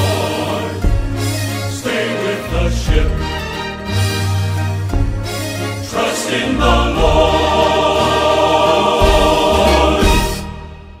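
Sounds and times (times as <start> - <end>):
choir and band holding a chord: 0.0 - 4.4, 5.5 - 11.0.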